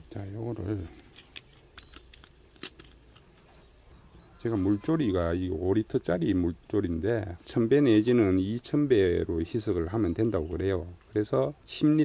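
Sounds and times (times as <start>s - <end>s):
screw cap twisted off bottle: 1.0s - 3.3s.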